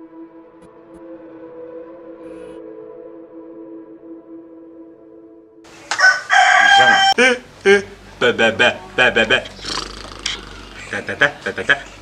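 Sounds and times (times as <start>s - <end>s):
rooster crowing: 5.7s - 7.4s.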